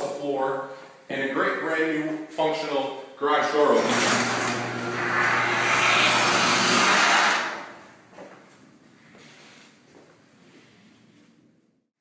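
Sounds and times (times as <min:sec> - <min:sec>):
garage door opener motor humming: 0:03.7 - 0:08.1.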